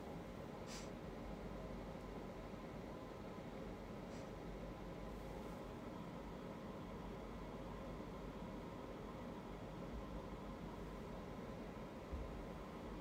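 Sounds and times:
room tone hiss: 0.0s - 13.0s.

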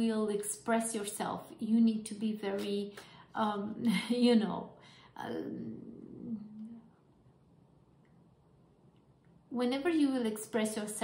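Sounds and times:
woman humming: 5.2s - 7.0s.

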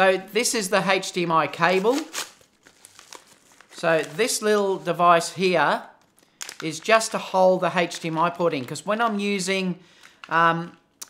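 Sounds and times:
packaging bag tearing: 1.6s - 4.4s, 6.1s - 7.1s
bag crinkling: 1.6s - 4.8s, 6.0s - 7.2s.

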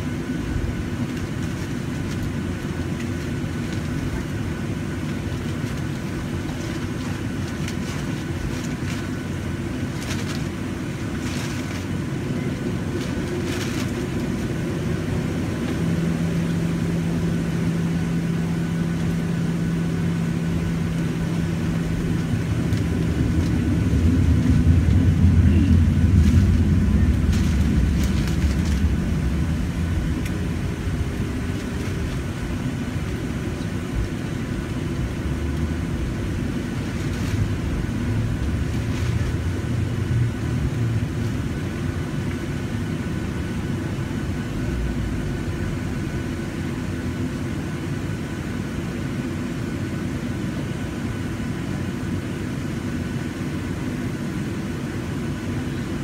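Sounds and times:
jet engine hum: 0.0s - 56.0s.

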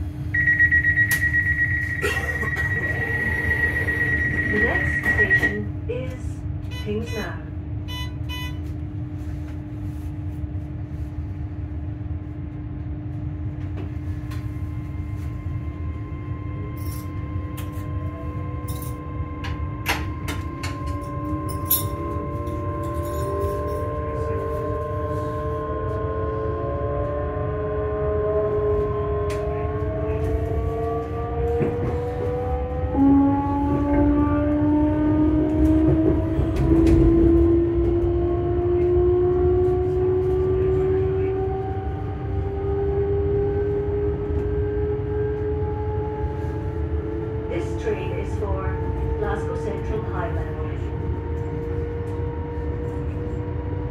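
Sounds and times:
train wheels rumbling on track: 0.0s - 53.9s
traction motor whine: 0.3s - 5.6s.

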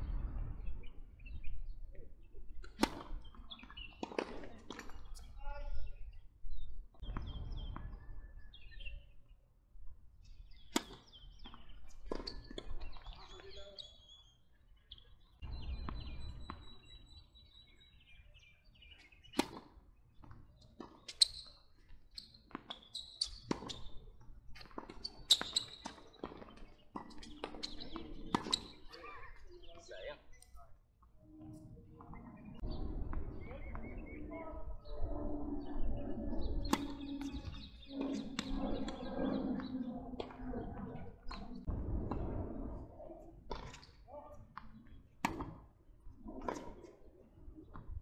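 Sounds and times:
birds chirping: 0.0s - 9.5s, 10.2s - 41.7s
voices: 27.0s - 30.8s, 31.4s - 41.4s, 43.0s - 44.8s.

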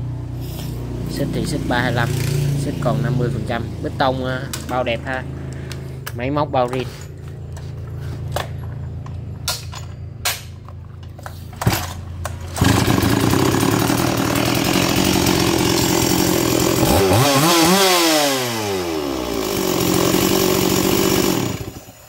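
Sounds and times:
chainsaw idling and revving: 0.2s - 5.8s, 12.4s - 22.0s.

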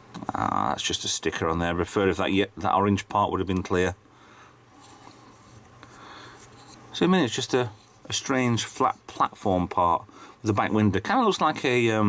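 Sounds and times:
fingers rustling and rubbing model: 4.8s - 9.4s.

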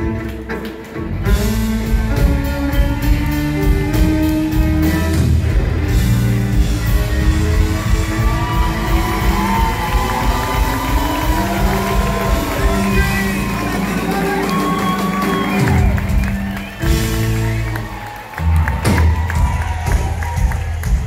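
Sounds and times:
country band playing: 0.0s - 21.0s
crowd cheering: 0.0s - 21.0s.

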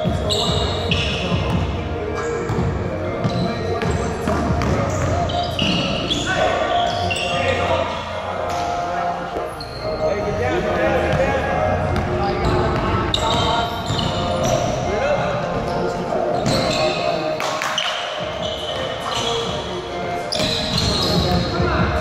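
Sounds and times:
sneakers squeaking: 0.0s - 22.0s.

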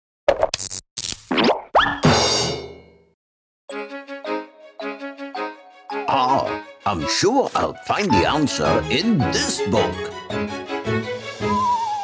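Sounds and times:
upward pitch glides: 11.4s - 12.0s.

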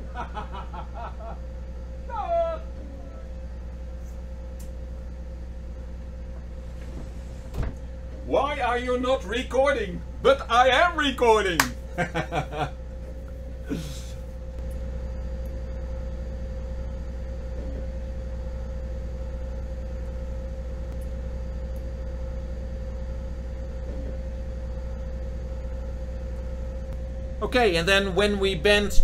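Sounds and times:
boat engines droning: 0.0s - 29.0s.

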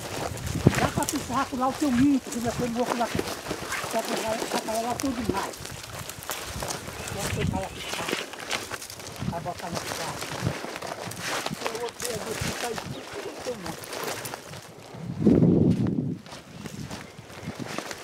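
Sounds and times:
footsteps through dry grass: 0.0s - 18.0s.

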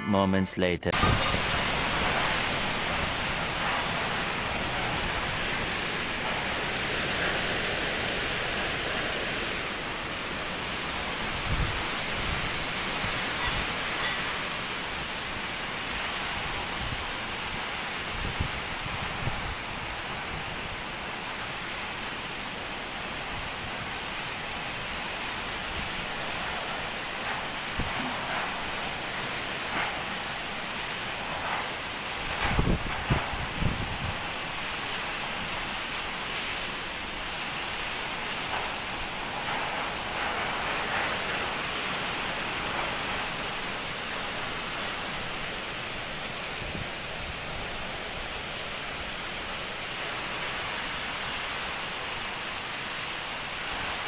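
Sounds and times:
heavy rain pouring: 0.9s - 54.0s
wind thrashing trees: 0.9s - 54.0s
wind buffeting microphone: 1.0s - 14.2s, 15.8s - 20.9s, 30.5s - 34.6s.

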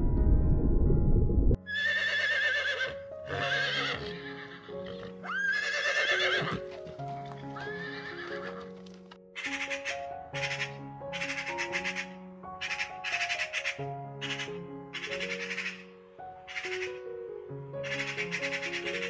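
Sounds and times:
loud low rumble: 0.0s - 1.6s
soft background music: 0.0s - 19.0s
horse whinnying: 1.6s - 8.7s
magpie rattling chatter: 9.4s - 15.9s, 16.5s - 17.0s, 17.8s - 19.0s.

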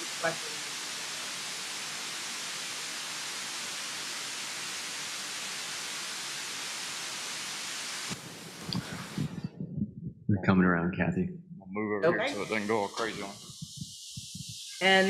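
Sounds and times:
steady static hiss: 0.0s - 9.6s, 12.0s - 15.0s.

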